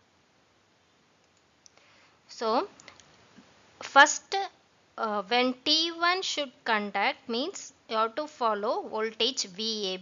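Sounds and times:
faint click: 1.2s - 1.8s, 2.8s - 3.5s.

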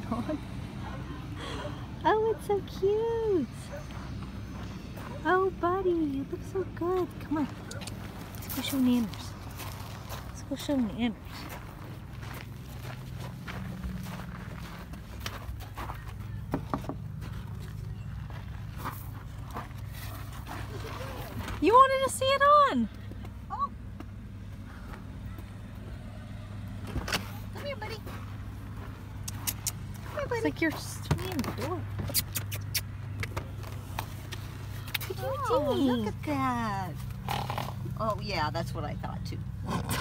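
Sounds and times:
footsteps on gravel: 3.7s - 5.5s, 6.8s - 21.9s, 27.3s - 32.1s.

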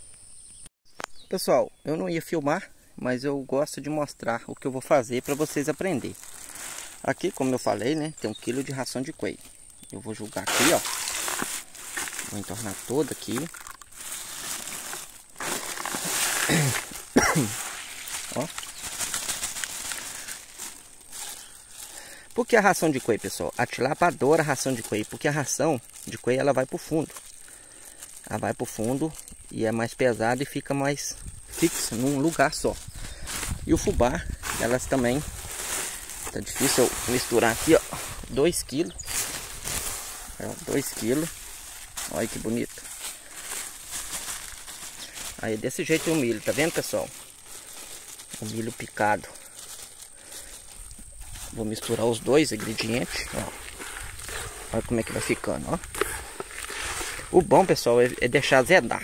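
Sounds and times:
plastic bag crinkling: 4.9s - 59.0s
pellets poured into metal basin: 10.1s - 27.3s, 31.5s - 49.2s, 51.4s - 58.5s.

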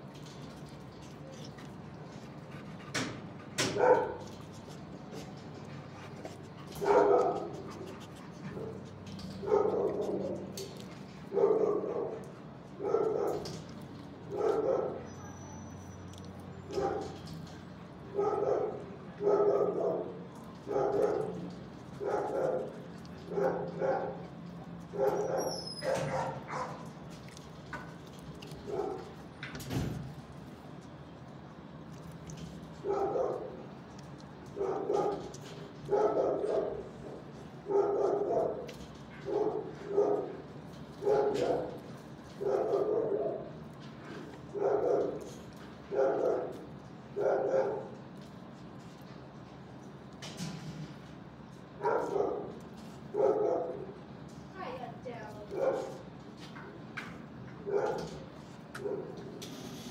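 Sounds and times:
dog barking: 3.7s - 4.3s, 6.8s - 7.7s, 9.4s - 10.4s, 11.3s - 13.5s, 14.3s - 15.2s, 16.7s - 17.2s, 18.1s - 22.7s, 23.3s - 24.3s, 24.9s - 26.9s, 28.7s - 29.1s, 32.8s - 33.6s, 34.6s - 40.4s, 41.0s - 41.8s, 42.4s - 43.5s, 44.6s - 45.3s, 45.9s - 46.6s, 47.2s - 48.0s, 51.8s - 53.9s, 55.5s - 56.0s, 57.6s - 58.2s.

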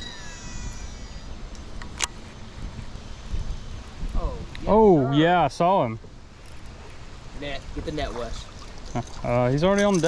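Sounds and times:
fishing reel whining: 0.0s - 1.6s
wind rumble on microphone: 0.0s - 5.0s.

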